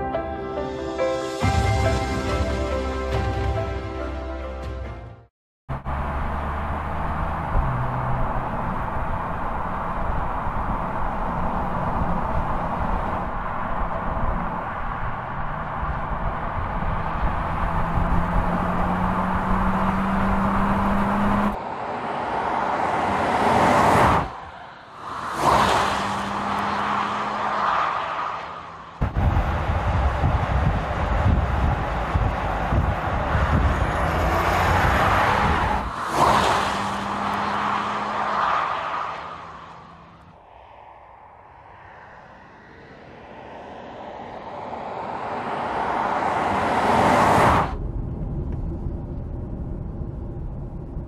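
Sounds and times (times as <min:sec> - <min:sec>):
car engine hum: 0:05.7 - 0:51.0
car passing with tyre noise: 0:05.7 - 0:51.0.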